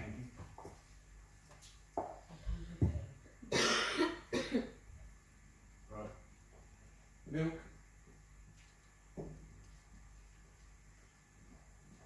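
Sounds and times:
person coughing: 0:03.5 - 0:04.8.

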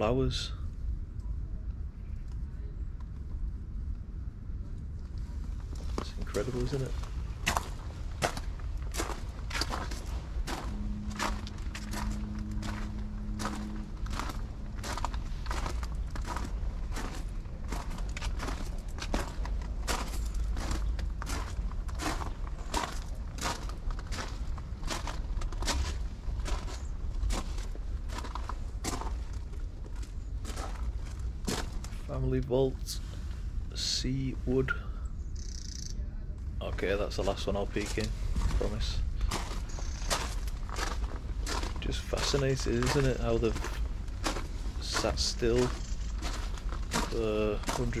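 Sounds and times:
footsteps crunching on gravel: 0:05.6 - 0:32.0, 0:37.2 - 0:48.0.

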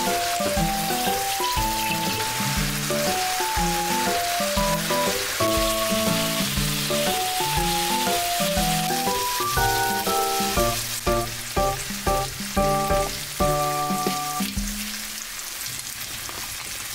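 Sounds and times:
bouncy background music: 0:00.0 - 0:15.0
meat sizzling in a pan: 0:00.0 - 0:16.9.

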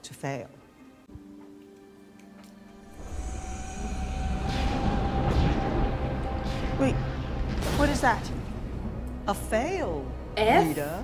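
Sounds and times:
steady high tone: 0:02.8 - 0:07.6
rushing swell: 0:02.8 - 0:09.2
low rumble: 0:02.8 - 0:10.4.

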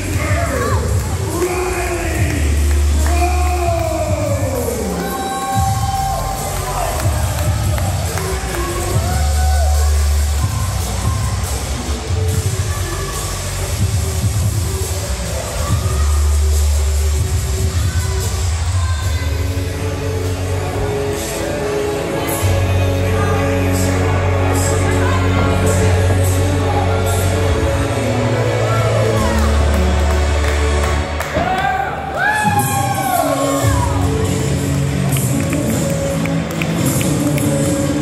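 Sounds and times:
crowd cheering and shouting: 0:00.0 - 0:38.0
entrance music with heavy bass: 0:00.0 - 0:38.0.

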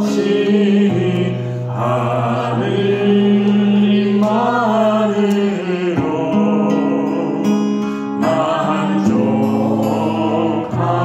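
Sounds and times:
man singing a hymn: 0:00.0 - 0:11.0.

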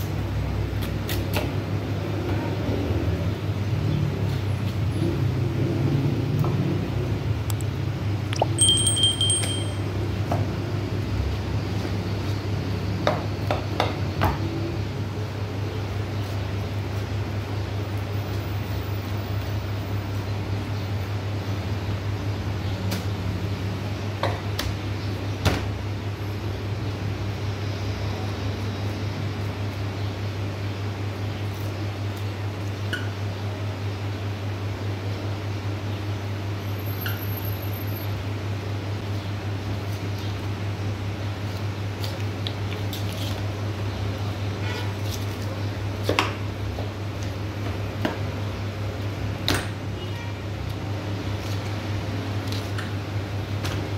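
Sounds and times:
low mechanical hum: 0:00.0 - 0:53.9.

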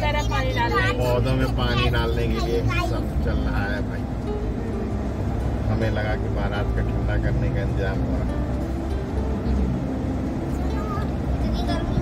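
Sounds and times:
voices talking: 0:00.0 - 0:04.8
car engine hum: 0:00.0 - 0:12.0
road noise: 0:00.0 - 0:12.0.

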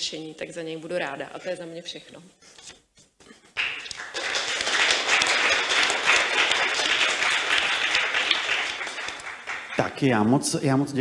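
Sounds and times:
audience applauding: 0:03.6 - 0:10.1.

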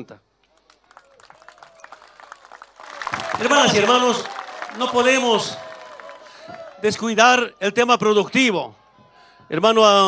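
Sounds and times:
crowd applause: 0:00.5 - 0:08.3.

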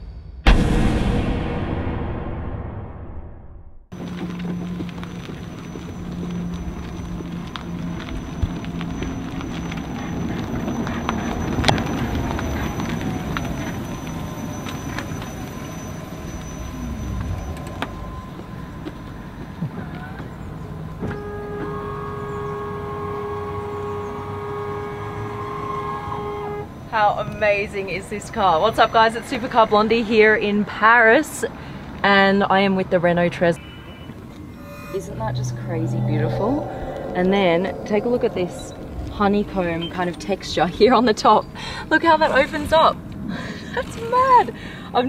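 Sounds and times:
electric car driving past: 0:04.0 - 0:27.0, 0:33.8 - 0:41.5
steady whine: 0:34.2 - 0:40.7.

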